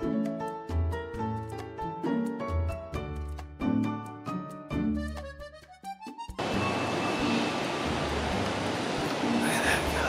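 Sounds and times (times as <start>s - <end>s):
city street traffic: 6.4s - 10.0s.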